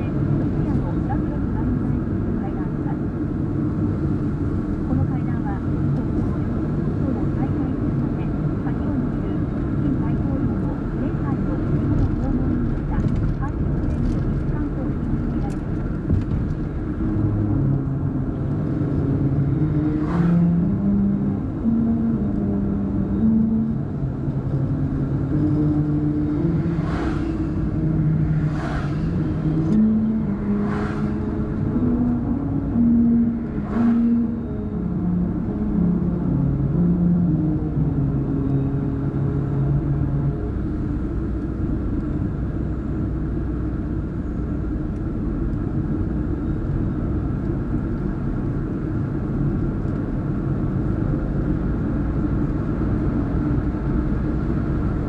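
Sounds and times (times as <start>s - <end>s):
engine and tyre rumble: 0.0s - 55.0s.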